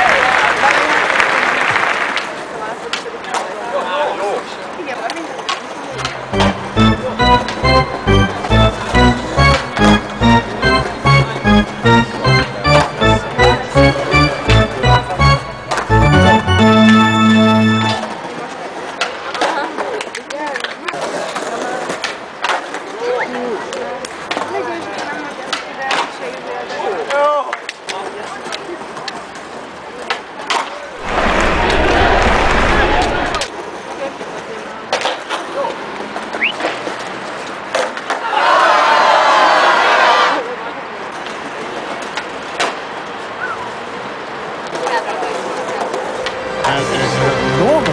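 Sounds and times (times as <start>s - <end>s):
skateboards clacking on ground: 0.0s - 5.9s, 18.2s - 31.0s, 33.4s - 38.3s, 40.9s - 46.1s
skateboards rolling on stone: 18.2s - 38.2s.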